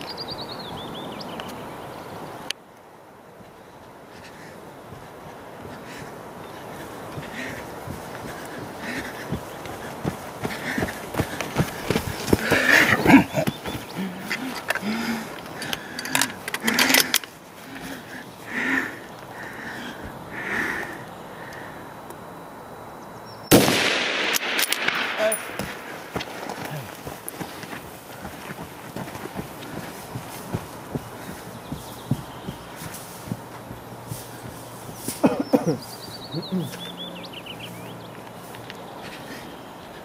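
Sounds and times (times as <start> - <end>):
rifle shot with rolling echo: 23.5 - 26.2.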